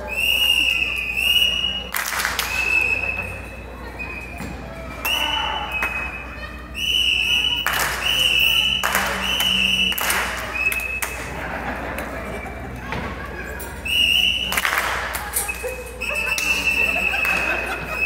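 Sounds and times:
high whistle notes: 0.0s - 1.9s, 5.0s - 11.2s, 13.8s - 14.6s.

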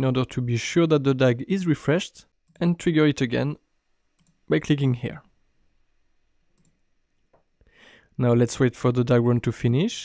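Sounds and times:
faint mouse click: 4.2s - 4.4s, 6.5s - 7.5s
faint breath: 7.6s - 8.2s.

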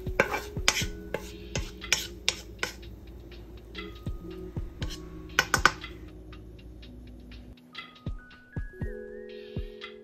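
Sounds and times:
soft background music: 0.0s - 10.0s
spatula knocking on glass bowl: 4.8s - 5.9s.

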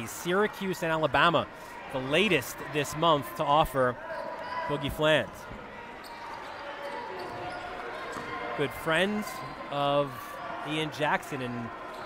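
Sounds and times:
gym background hubbub: 0.0s - 12.0s.

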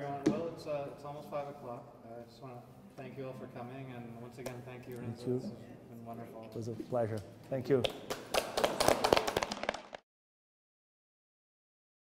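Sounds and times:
audience applauding: 8.0s - 10.0s.

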